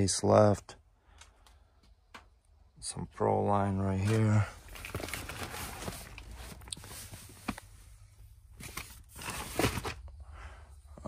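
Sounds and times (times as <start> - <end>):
plastic-wrapped packs rustling: 4.0 - 7.6.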